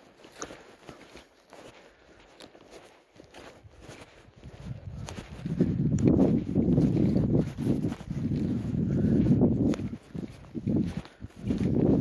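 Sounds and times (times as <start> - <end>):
footsteps on stony ground: 0.0 - 12.0.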